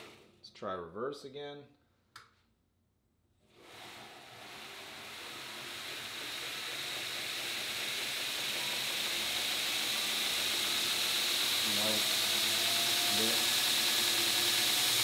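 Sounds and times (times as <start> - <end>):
motor high whine: 3.6 - 15.0
grinder belt hiss: 3.7 - 15.0.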